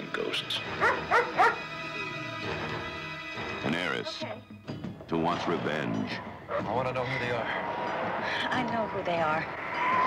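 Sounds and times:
background music: 0.0 - 10.0
dog barking: 0.8 - 1.6.

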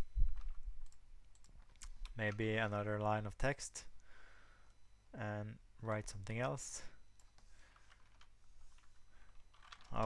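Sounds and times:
keyboard typing: 7.2 - 10.0.

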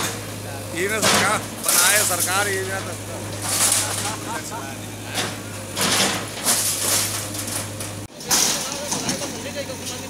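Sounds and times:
diesel engine running: 0.0 - 10.0
falling masonry crashing: 0.8 - 9.2.

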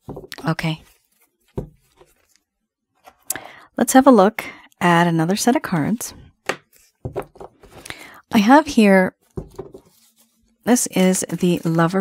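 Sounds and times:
cards tapping on a table: 9.4 - 9.8.

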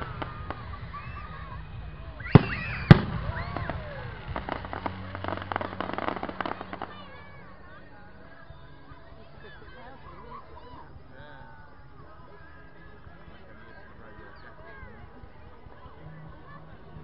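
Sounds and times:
fireworks crackling: 0.0 - 12.5
firework shells bursting: 2.3 - 7.0.

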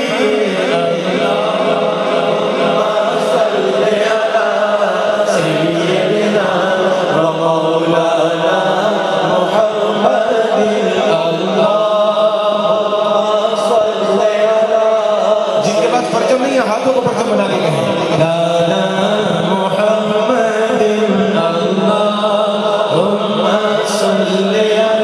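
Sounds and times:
man singing through microphone: 0.0 - 25.0.

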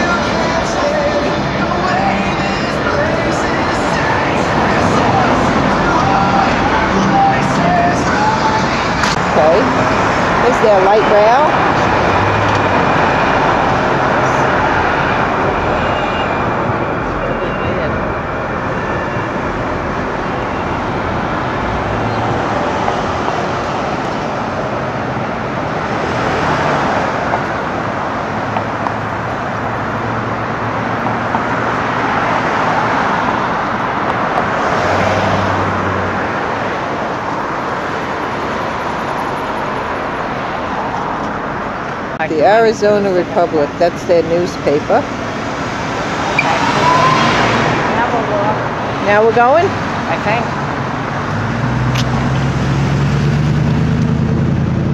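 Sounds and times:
street traffic passing: 0.0 - 54.9.

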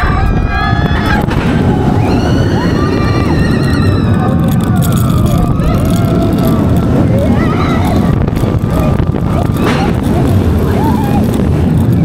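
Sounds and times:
riders screaming: 0.0 - 12.0
wind rushing on microphone: 0.0 - 12.0.

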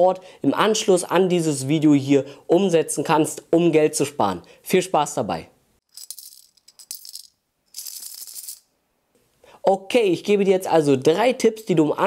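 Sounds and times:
shaker rattling bursts: 5.9 - 8.7.

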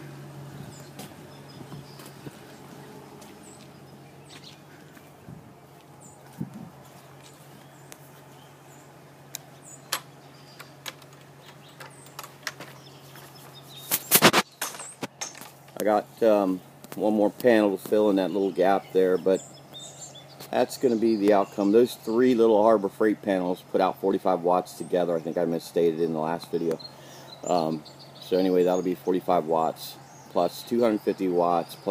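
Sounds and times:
steady low hum: 0.0 - 31.9.

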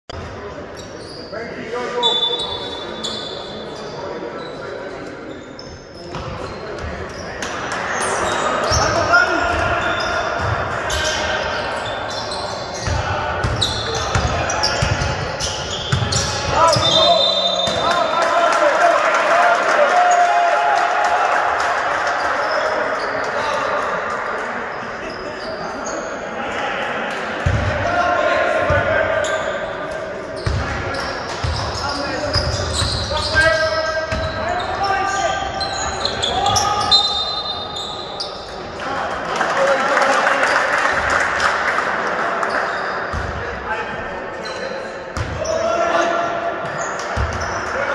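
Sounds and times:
voices echoing in a hall: 0.1 - 47.9
basketball bouncing on court: 10.4 - 10.6, 12.8 - 15.3, 15.9 - 17.0, 30.4 - 30.8, 34.1 - 34.4, 45.2 - 45.4.

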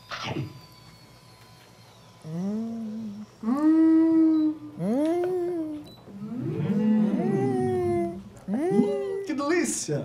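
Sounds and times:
woman humming mmm: 2.2 - 9.3.

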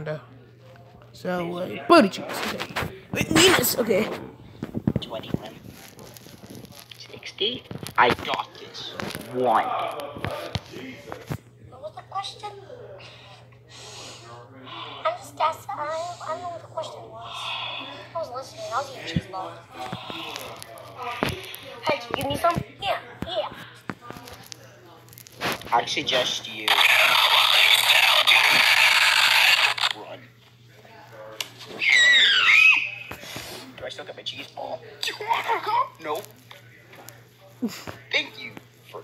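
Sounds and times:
high-pitched wailing cry: 31.8 - 33.1.

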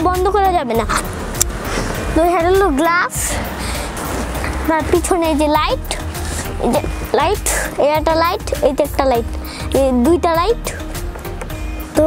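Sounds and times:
child speaking: 0.0 - 1.1, 2.1 - 3.4, 4.6 - 10.8
rustling and handling noise: 3.7 - 7.8.

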